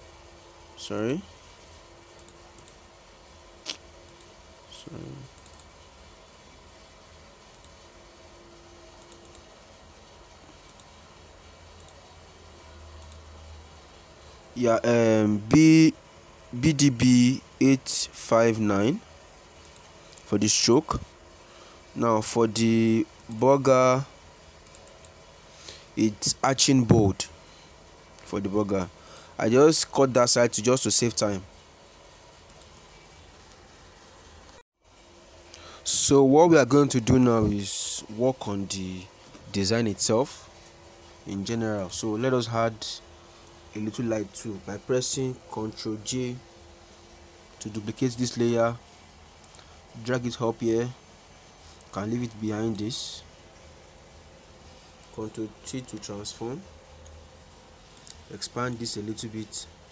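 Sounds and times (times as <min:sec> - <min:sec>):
computer mouse clicks: 0:02.1 - 0:02.8, 0:05.3 - 0:05.7, 0:09.0 - 0:09.5, 0:24.6 - 0:25.2.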